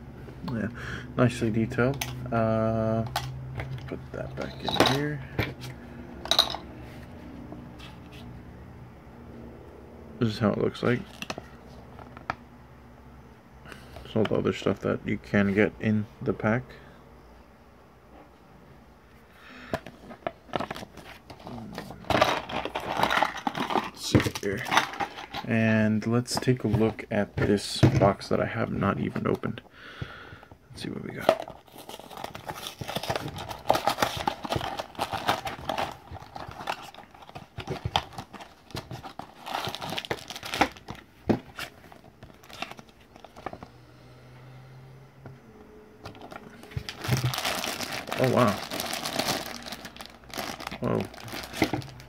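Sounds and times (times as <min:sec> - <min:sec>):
plastic packaging crinkling: 0:20.5 - 0:25.5, 0:31.4 - 0:43.6, 0:46.1 - 0:52.0
cardboard rustling and scraping: 0:31.4 - 0:43.7.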